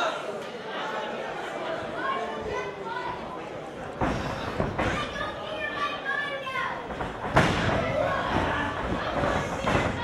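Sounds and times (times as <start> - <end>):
spectators' voices and shouts: 0.0 - 10.0.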